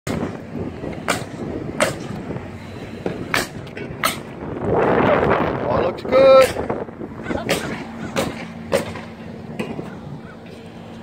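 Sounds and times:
passing street traffic: 0:00.1 - 0:11.0.

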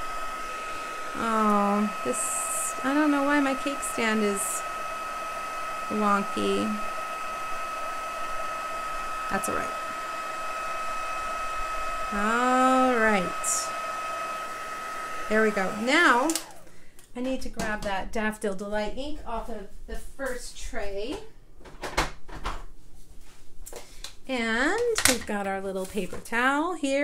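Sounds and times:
heat tool blowing hot air: 0:00.0 - 0:16.8
plastic handling noise: 0:24.8 - 0:26.4.

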